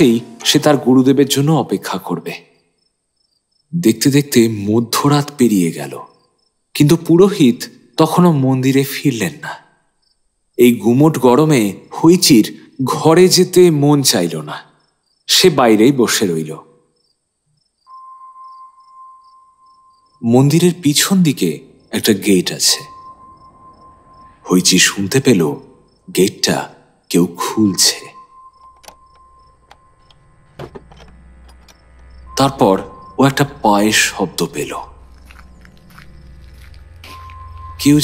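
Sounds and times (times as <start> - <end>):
crickets chirping: 0.0 - 38.0
steady clear tone: 0.0 - 38.0
low background drone: 17.9 - 38.0
crunching footsteps: 34.4 - 38.0.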